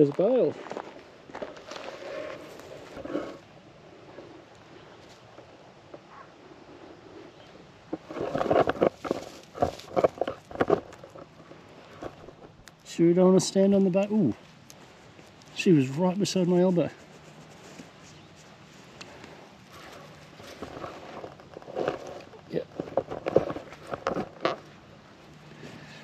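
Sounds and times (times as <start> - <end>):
dry straw crunching and rustling: 8.0 - 12.4.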